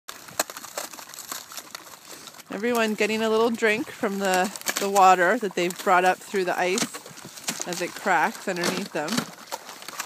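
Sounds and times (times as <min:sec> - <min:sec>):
ice cracking under dogs' paws: 0:00.1 - 0:10.0.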